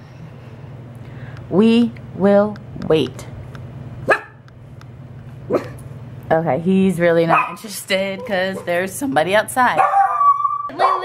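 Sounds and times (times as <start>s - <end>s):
small dog barking: 4.1s - 4.4s, 5.5s - 5.8s, 7.3s - 7.6s, 9.8s - 11.0s.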